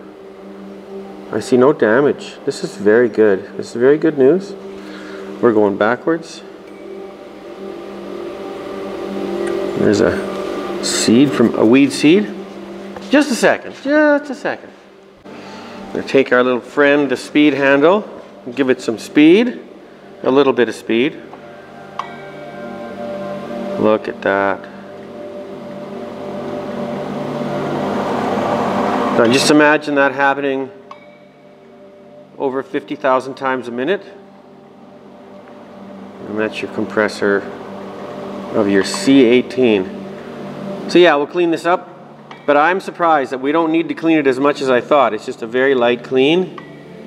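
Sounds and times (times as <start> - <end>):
compressor rotor airy whir: 0.0 - 13.8, 21.2 - 29.8
machine hum with pitched tones: 0.0 - 47.0.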